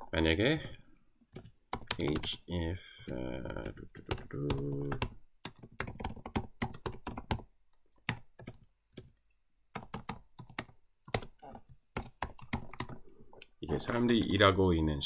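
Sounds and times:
typing on computer keyboard: 0.6 - 2.4, 3.1 - 13.0.

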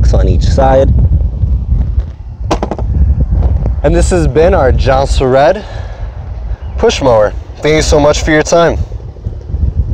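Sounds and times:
wind rumble: 0.0 - 9.9
microphone handling: 1.0 - 3.8.

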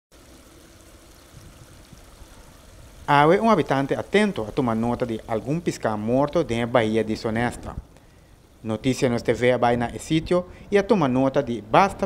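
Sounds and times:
shallow water trickling: 0.1 - 11.8.

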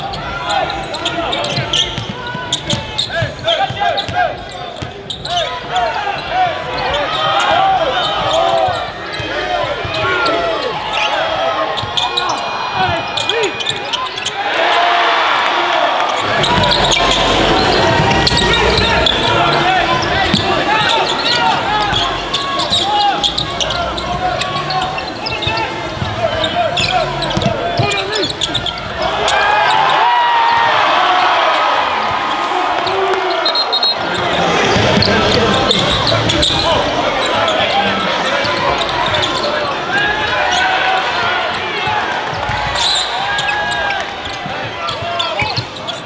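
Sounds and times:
crowd voices in large hall: 0.0 - 46.0
basketball bouncing on court: 1.4 - 4.2, 16.2 - 18.5, 25.5 - 29.0.

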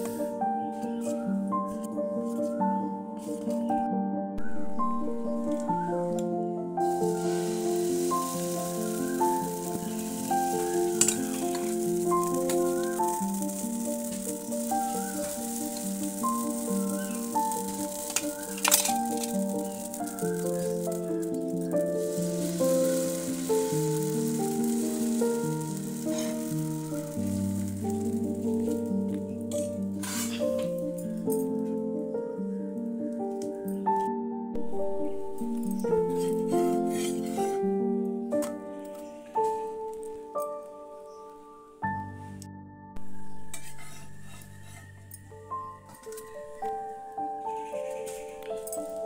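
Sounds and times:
instrumental background music: 0.0 - 49.0
dosa sizzling in frying pan: 6.8 - 30.8, 34.6 - 37.6, 43.0 - 45.0.

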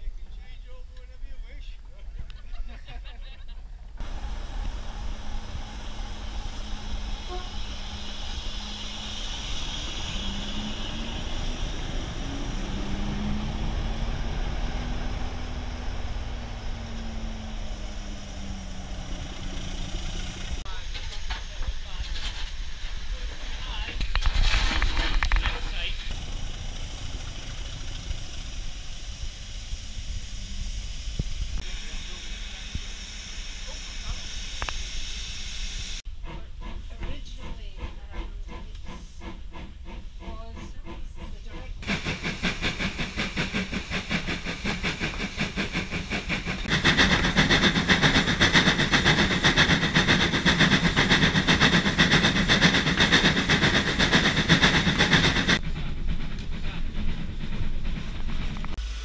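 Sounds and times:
railway engine rumble: 0.0 - 59.0
hum rising and falling in pitch: 4.0 - 20.6
loud burst of steam hiss: 4.0 - 36.0, 41.8 - 55.7, 58.7 - 59.0
steam locomotive hissing: 4.0 - 59.0.

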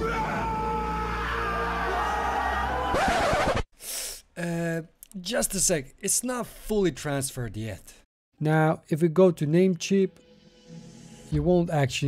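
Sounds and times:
crowd shouting and cheering: 0.0 - 3.6
soundtrack music: 10.1 - 12.0.

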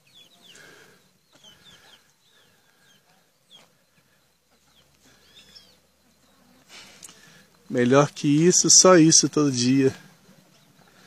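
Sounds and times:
birds cheeping and chirping: 0.0 - 11.0
chickens clucking: 0.0 - 11.0.

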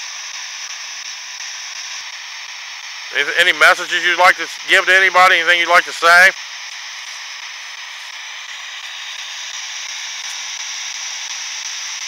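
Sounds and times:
steady static hiss: 0.0 - 12.0.

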